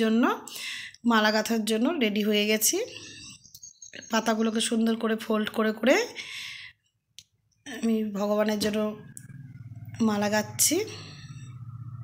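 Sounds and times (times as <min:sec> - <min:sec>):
woman speaking: 0:00.0 - 0:03.2, 0:04.0 - 0:06.6, 0:07.7 - 0:09.3, 0:09.9 - 0:11.4.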